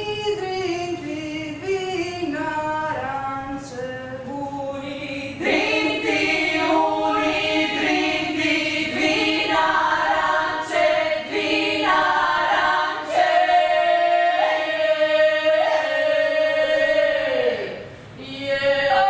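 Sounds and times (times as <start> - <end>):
women singing a cappella in harmony: 0.0 - 19.0.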